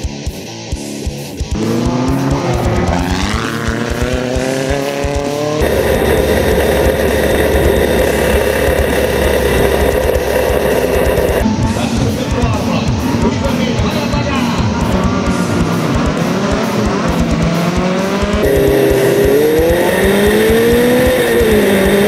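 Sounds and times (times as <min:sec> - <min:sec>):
rock music: 0:00.0 - 0:22.0
race car engine revving: 0:01.4 - 0:22.0.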